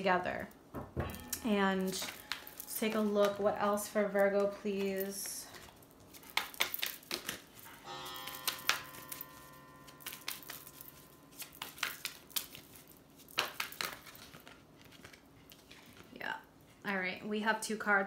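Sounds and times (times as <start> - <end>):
cards being shuffled: 2.0 - 7.6, 10.0 - 16.2.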